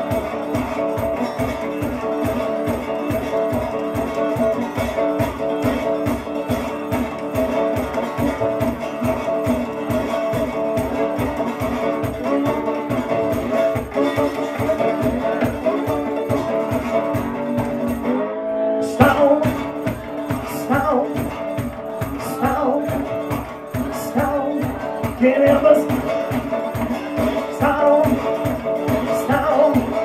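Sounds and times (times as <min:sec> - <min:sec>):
foot tambourine: 0:00.0 - 0:18.1, 0:19.0 - 0:30.0
slide dobro blues: 0:00.0 - 0:30.0
stomp-box beat: 0:19.0 - 0:30.0.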